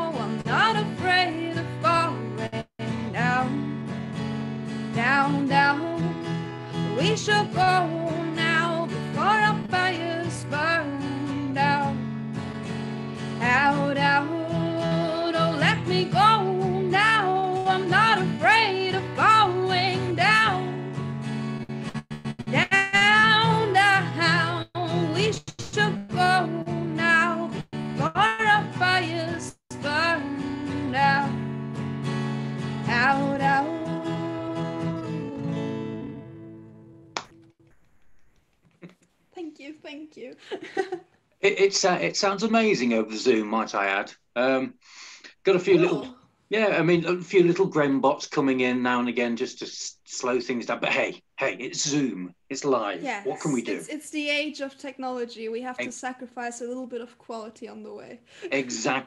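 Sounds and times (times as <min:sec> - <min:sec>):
woman singing: 0:00.0 - 0:03.8, 0:04.9 - 0:06.2, 0:06.9 - 0:12.0, 0:13.4 - 0:20.9, 0:22.5 - 0:31.4, 0:32.8 - 0:36.3, 0:45.8 - 0:46.1, 0:53.0 - 0:54.4
strummed acoustic guitar: 0:00.0 - 0:37.5, 0:53.1 - 0:54.0, 0:58.4 - 0:59.0.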